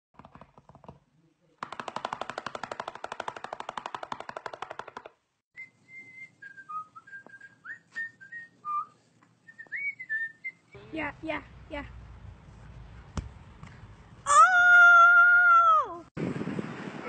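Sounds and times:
whistled tune: 0:05.6 - 0:10.8.

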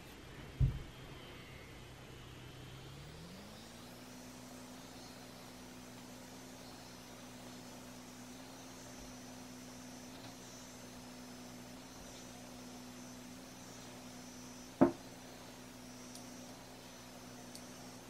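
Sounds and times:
facial device buzzing: 0:02.8 - 0:18.0.

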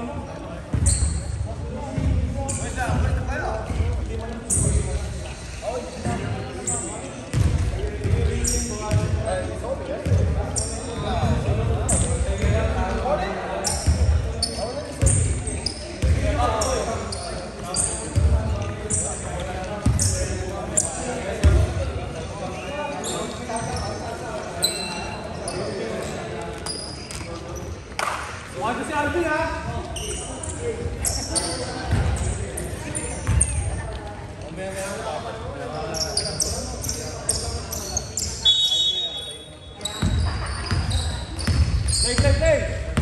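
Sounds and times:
sneaker squeaks: 0:00.3 - 0:09.4, 0:10.0 - 0:28.3, 0:29.2 - 0:43.0
basketball bouncing on wooden floor: 0:07.3 - 0:08.3, 0:40.0 - 0:43.0.

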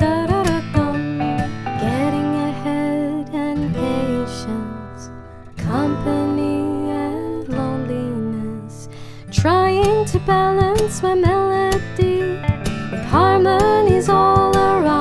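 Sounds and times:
acoustic guitar melody: 0:00.0 - 0:15.0.

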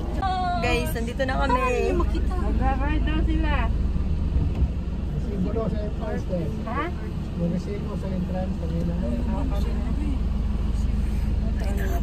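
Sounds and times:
van rumble from inside cabin: 0:00.0 - 0:12.0.

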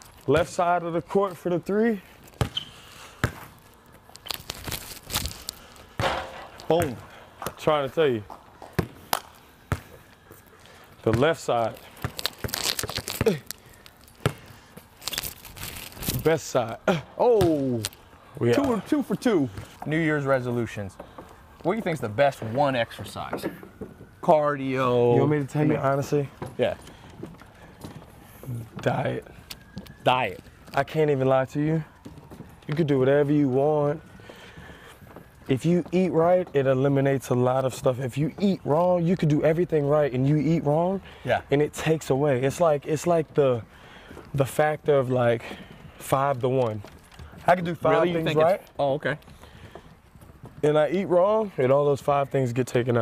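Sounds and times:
shoe scuffs: 0:02.2 - 0:06.9
basketball thumping on court: 0:02.4 - 0:03.5, 0:06.0 - 0:07.6, 0:08.7 - 0:09.0
man talking: 0:06.6 - 0:08.3, 0:11.0 - 0:11.9, 0:16.1 - 0:21.0, 0:21.6 - 0:23.6, 0:24.2 - 0:26.8, 0:28.4 - 0:29.3, 0:30.0 - 0:31.9, 0:32.7 - 0:34.0, 0:35.5 - 0:43.7, 0:44.3 - 0:49.2, 0:50.6 - 0:53.0.

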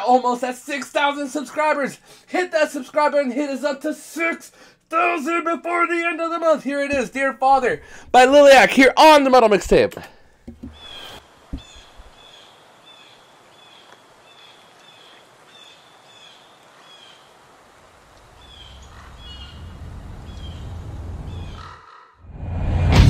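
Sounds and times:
bird chirping: 0:10.5 - 0:17.3, 0:18.2 - 0:22.2
low rumble: 0:18.4 - 0:21.6, 0:22.3 - 0:23.0.

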